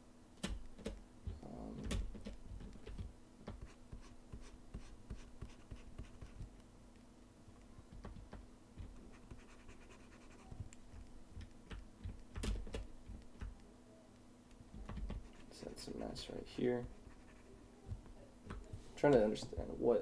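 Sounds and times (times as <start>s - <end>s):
steady low hum: 0.0s - 20.0s
stylus scratching on graphics tablet: 3.5s - 6.5s, 8.8s - 11.1s, 15.0s - 18.0s.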